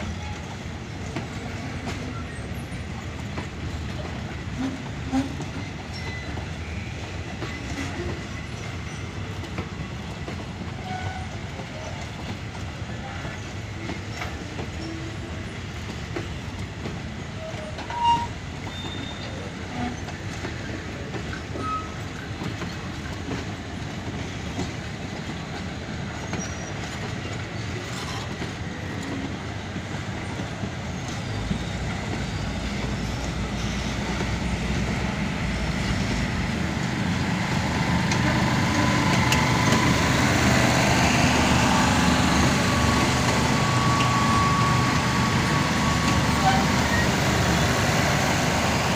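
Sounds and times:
train wheels on rails: 0.0s - 48.9s.

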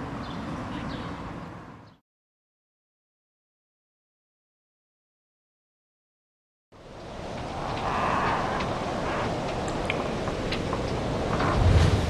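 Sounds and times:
rushing wind-like noise: 6.8s - 12.0s
faint high ticks: 7.4s - 11.0s.

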